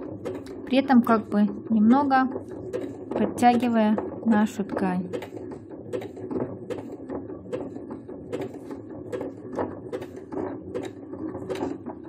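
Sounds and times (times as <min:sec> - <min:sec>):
sewing machine motor hum: 0:00.0 - 0:12.0.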